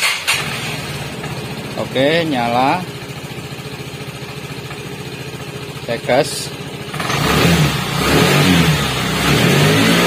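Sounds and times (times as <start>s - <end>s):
scooter engine idling: 0.0s - 9.6s.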